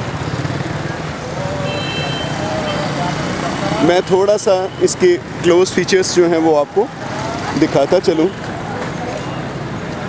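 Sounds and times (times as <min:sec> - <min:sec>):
street traffic din: 0:00.0 - 0:10.0.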